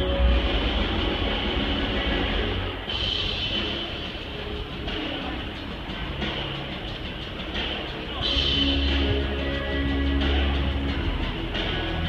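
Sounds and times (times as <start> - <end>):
music over loudspeakers: 0.0 - 12.0.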